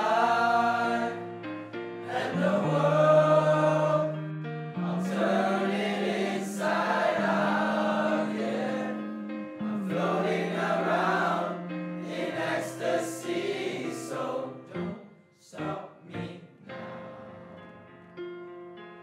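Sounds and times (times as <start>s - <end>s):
men singing in harmony: 0.0s - 1.4s, 2.0s - 4.2s, 4.8s - 14.9s.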